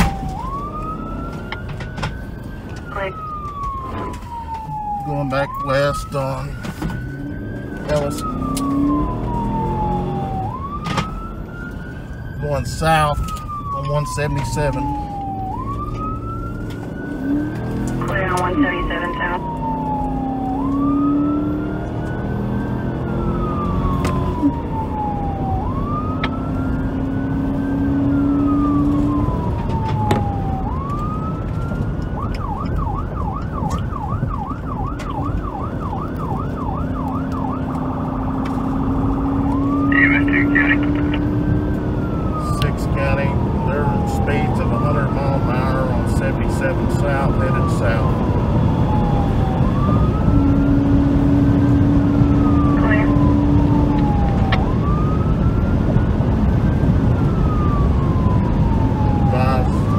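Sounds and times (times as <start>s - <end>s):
police siren wail and yelp: 0.0s - 59.9s
road noise: 0.0s - 59.9s
car engine accelerating: 6.8s - 12.4s, 14.5s - 32.3s, 36.2s - 59.9s.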